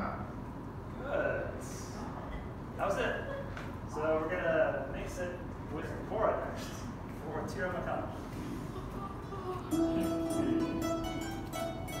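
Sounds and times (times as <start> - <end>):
plucked lute notes: 9.7 - 12.0.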